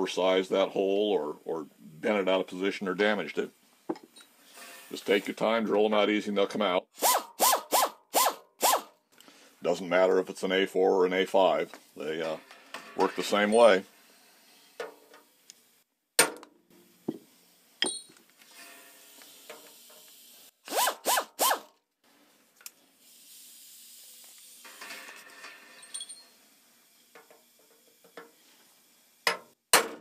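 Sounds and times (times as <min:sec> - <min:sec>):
air drill drilling rivet: 0:07.0 - 0:08.9, 0:18.8 - 0:21.7.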